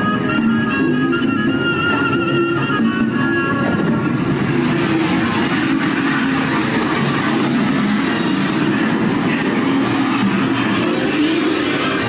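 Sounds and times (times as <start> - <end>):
cartoon train clattering: 0.0 - 12.0.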